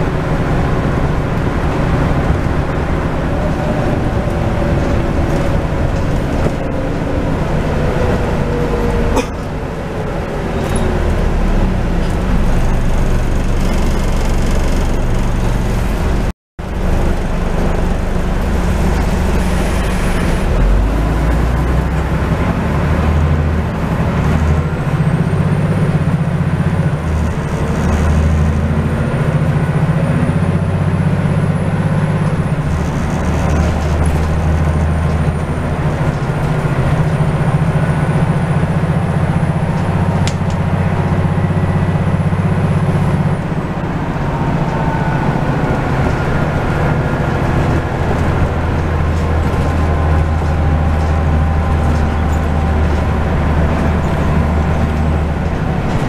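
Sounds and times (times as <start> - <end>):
bus diesel engine: 0.0 - 56.0
road noise: 0.0 - 56.0.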